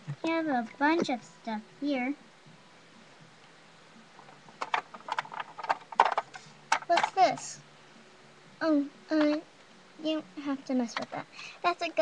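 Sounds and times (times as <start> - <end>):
plastic figures clicking: 4.6 - 7.2.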